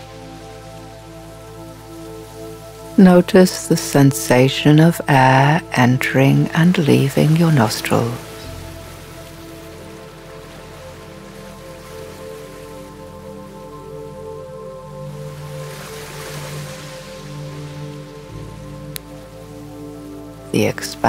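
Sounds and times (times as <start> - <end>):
ocean surf: 0.0 - 14.2, 15.0 - 21.0
ambient music of held notes: 0.0 - 21.0.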